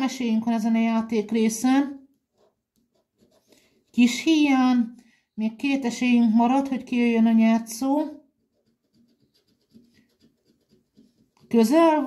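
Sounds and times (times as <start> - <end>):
coin scratching lottery ticket: 8.4 - 11.6.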